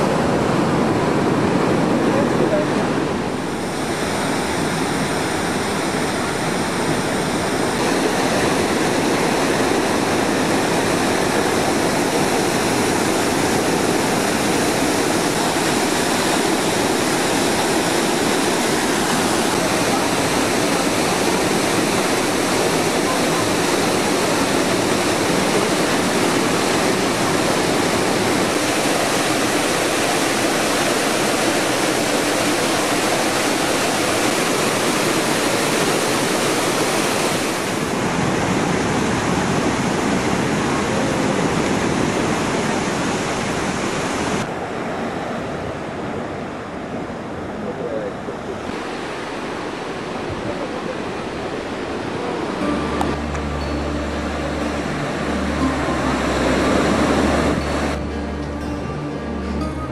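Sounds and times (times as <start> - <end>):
waterfall rushing: 0.0 - 47.6, 48.2 - 59.9
surf breaking on beach: 0.0 - 58.0.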